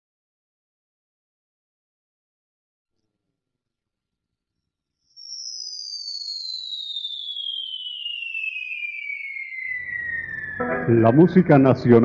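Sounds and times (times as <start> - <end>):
synth tone gliding downward: 7.0 - 12.0.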